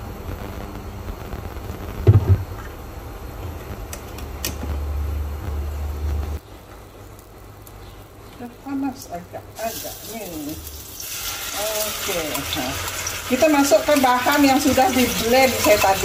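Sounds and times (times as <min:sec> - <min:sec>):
low steady hum: 0:00.0 - 0:16.0
sharp knock: 0:02.0 - 0:02.4
oil pouring into pan: 0:10.7 - 0:13.4.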